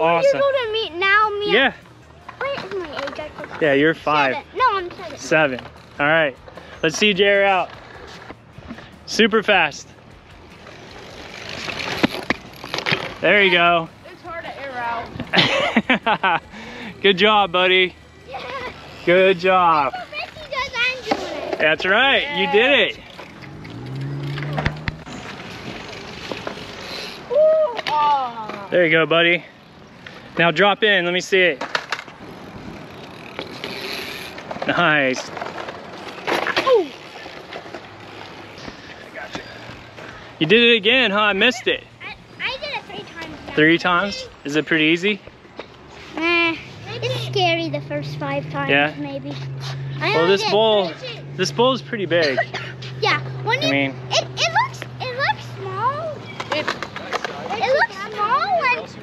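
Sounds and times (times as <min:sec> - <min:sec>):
bike tyres rolling on concrete: 0:00.0 - 0:59.0
person shouting: 0:27.3 - 0:27.8.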